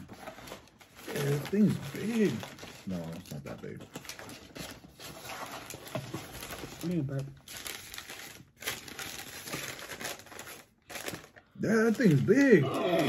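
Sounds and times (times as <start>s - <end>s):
paper and cardboard crinkling: 0.0s - 13.0s.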